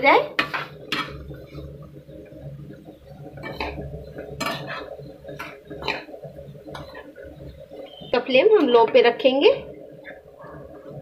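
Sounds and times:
spoon clinking and scraping pan: 4.4s - 6.1s.

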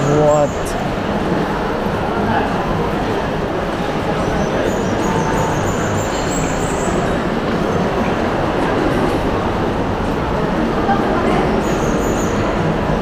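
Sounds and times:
crowd murmur: 0.0s - 13.0s.

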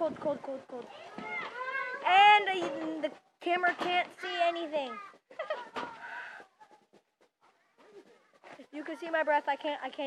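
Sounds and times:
boy exhaling breathily: 6.0s - 6.5s.

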